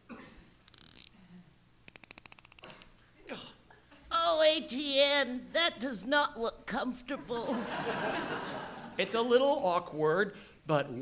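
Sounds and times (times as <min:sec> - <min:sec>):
wind-up key ratchet clicks: 0:00.6 - 0:01.1, 0:01.9 - 0:02.9.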